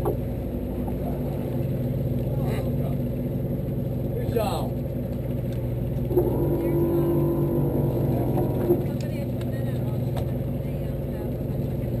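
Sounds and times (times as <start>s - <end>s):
boat engine droning: 0.0s - 12.0s
steady held tone: 6.1s - 8.9s.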